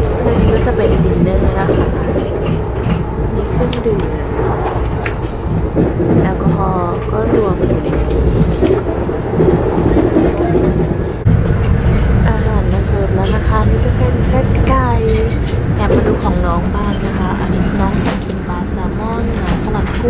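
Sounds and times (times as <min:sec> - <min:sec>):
faint voices: 0:00.0 - 0:11.3
train running rumble: 0:00.0 - 0:20.0.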